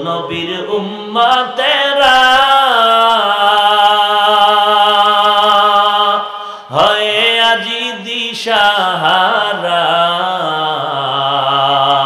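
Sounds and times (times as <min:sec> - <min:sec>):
man chanting through microphones: 0:00.0 - 0:12.0.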